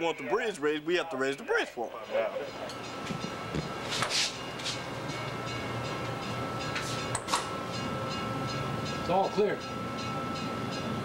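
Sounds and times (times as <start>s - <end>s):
machinery rumbling hum: 0.0s - 11.0s.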